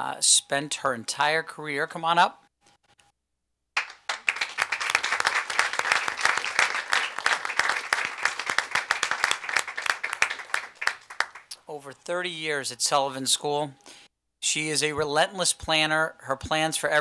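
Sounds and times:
audience applauding: 0:03.8 - 0:11.5.

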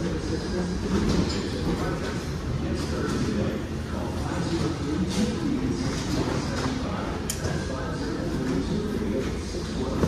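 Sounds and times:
low rumble of store crowd: 0:00.0 - 0:10.0.

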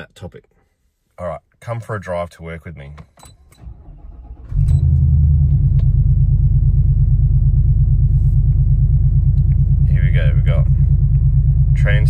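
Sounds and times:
car engine starting and idling: 0:03.4 - 0:12.0.

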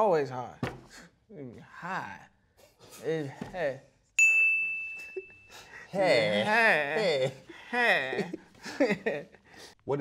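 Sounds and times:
bell-like ding: 0:04.2 - 0:05.6.

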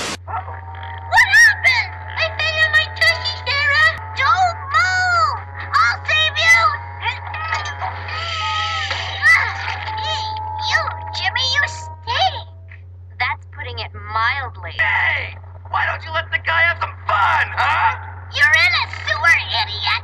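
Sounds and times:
steady low hum: 0:00.0 - 0:20.0
background music: 0:00.1 - 0:12.8
cartoon children wailing: 0:01.0 - 0:12.3.

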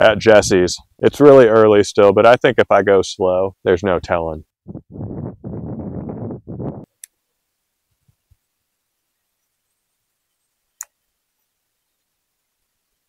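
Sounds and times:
person speaking: 0:00.0 - 0:04.4.

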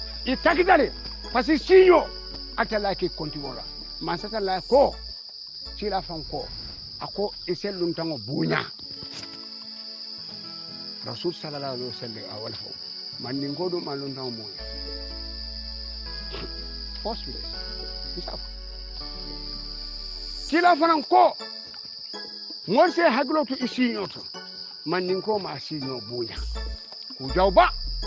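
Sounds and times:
steady high-pitched hiss: 0:00.0 - 0:28.0
person speaking: 0:00.3 - 0:05.0, 0:20.5 - 0:21.4, 0:24.9 - 0:26.5.

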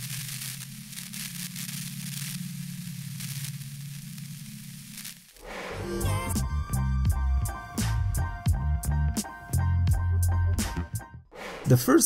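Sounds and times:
low buzzing electric hum: 0:00.0 - 0:05.4
crackling static: 0:00.0 - 0:06.3
music: 0:05.4 - 0:12.0.

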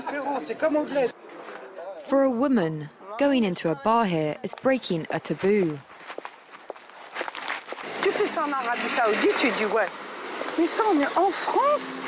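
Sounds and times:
faint background noise: 0:00.0 - 0:12.0
footsteps: 0:04.4 - 0:10.6.

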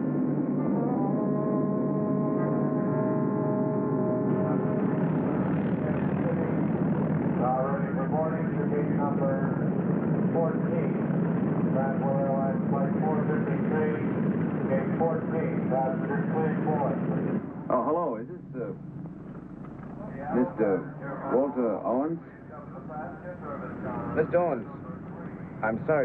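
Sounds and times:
propeller airliner engines running: 0:00.0 - 0:26.0
indistinct voices: 0:00.6 - 0:09.7, 0:19.8 - 0:26.0.

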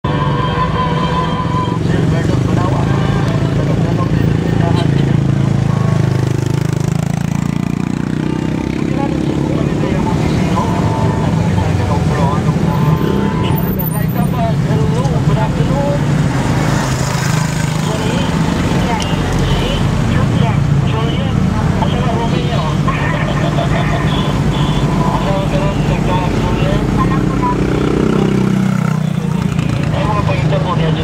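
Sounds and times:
voices talking: 0:00.0 - 0:31.0
vehicle engine running: 0:00.2 - 0:31.0.

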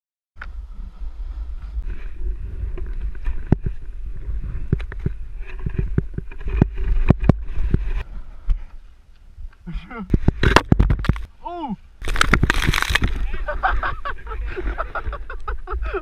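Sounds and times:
wind rumble on microphone: 0:00.4 - 0:11.3
snowboard scraping over snow: 0:00.5 - 0:08.4.

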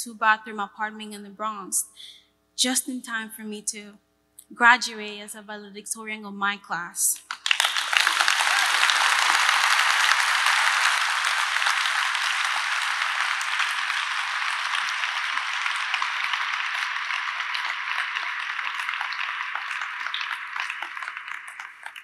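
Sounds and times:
audience applauding: 0:07.2 - 0:22.0.

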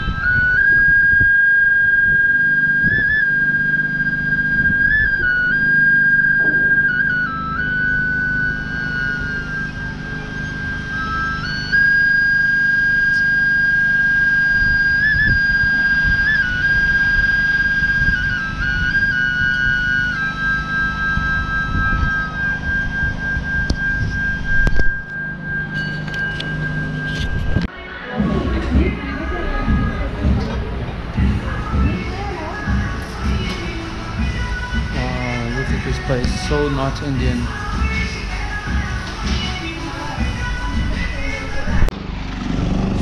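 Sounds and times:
wooden flute playing: 0:00.0 - 0:27.8, 0:31.2 - 0:41.9.

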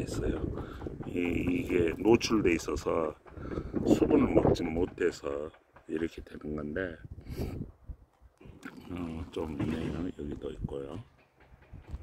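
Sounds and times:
man breathing in: 0:03.3 - 0:03.8.

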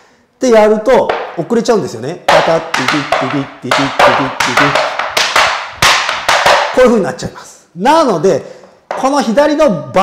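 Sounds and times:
tap shoes on wooden board: 0:01.1 - 0:01.4, 0:02.3 - 0:06.8, 0:08.9 - 0:09.1.

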